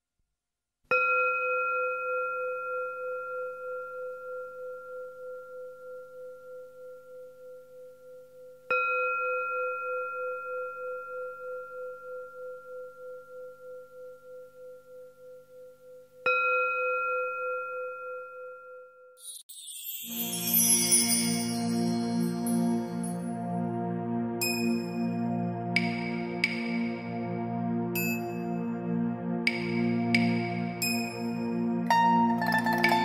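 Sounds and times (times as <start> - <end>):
bowl bell ringing: 16.4 - 23.5.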